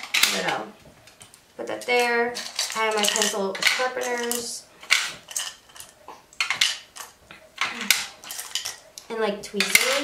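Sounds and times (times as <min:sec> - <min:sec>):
small tools clinking against a dish: 0:01.8 - 0:10.0.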